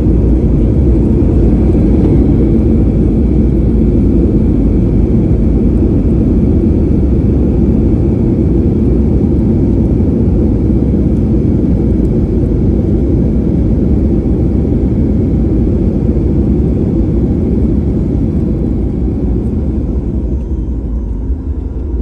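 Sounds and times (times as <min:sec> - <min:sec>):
jet engine rumble in cabin: 0:00.0 - 0:22.0.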